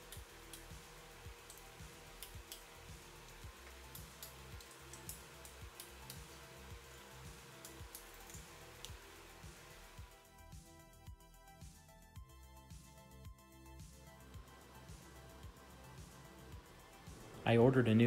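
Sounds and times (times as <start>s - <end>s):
ratchet wrench clicks: 0.0s - 9.0s
faint background music: 0.0s - 18.0s.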